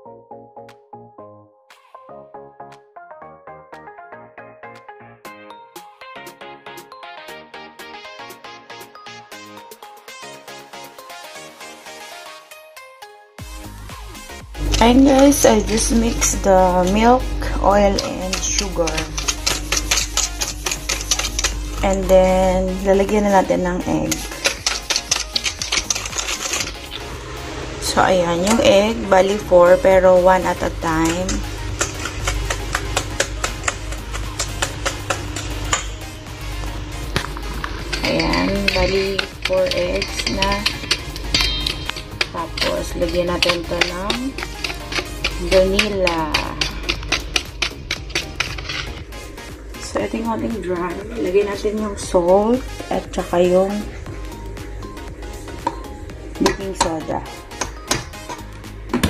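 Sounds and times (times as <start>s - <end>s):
background music: 0.0s - 59.0s
whisk clattering in metal bowl: 17.9s - 22.2s, 24.0s - 27.0s, 30.4s - 36.0s, 37.4s - 49.5s.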